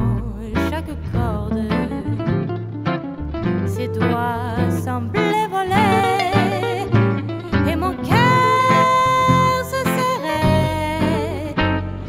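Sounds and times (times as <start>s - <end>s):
swing band playing: 5.8s - 8.7s.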